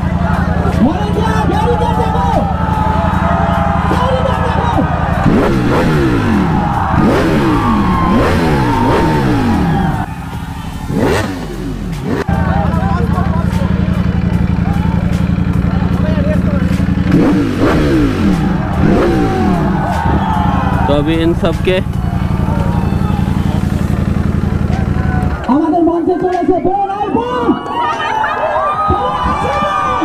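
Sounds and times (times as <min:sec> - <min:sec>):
motorcycle engine revving: 0:00.0 - 0:25.7
crowd voices: 0:00.0 - 0:30.0.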